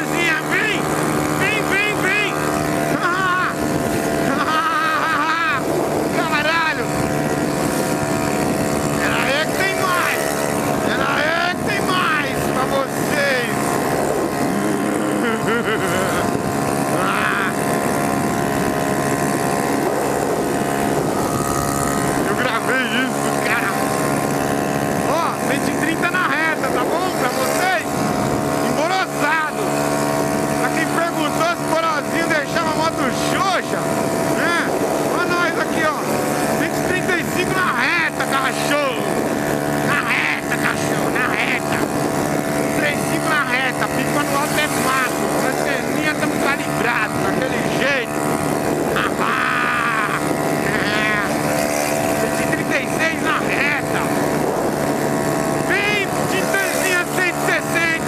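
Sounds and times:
motorcycle engine at high revs: 0:00.0 - 0:58.0.

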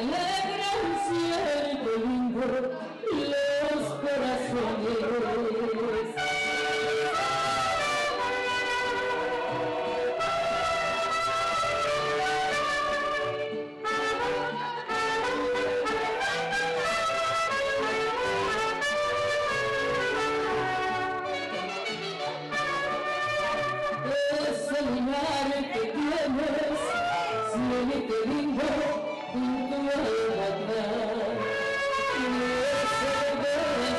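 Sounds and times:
mariachi band with trumpets: 0:00.0 - 0:33.9.

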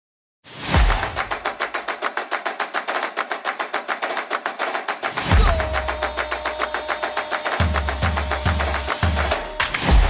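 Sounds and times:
fast percussion roll: 0:05.0 - 0:10.0.

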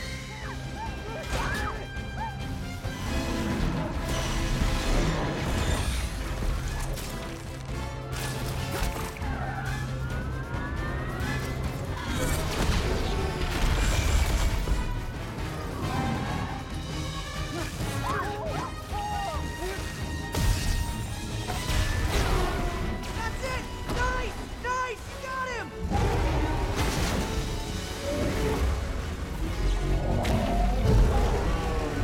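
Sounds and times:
orchestral score: 0:00.0 - 0:32.0
deep rumble of fire and blasts: 0:25.8 - 0:32.0.

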